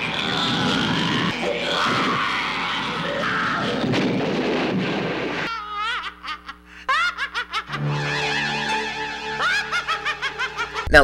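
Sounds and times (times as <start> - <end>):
high wavering shrieking voices: 0.0 - 4.2, 7.8 - 10.9
horror film music: 0.0 - 4.6, 7.6 - 10.9.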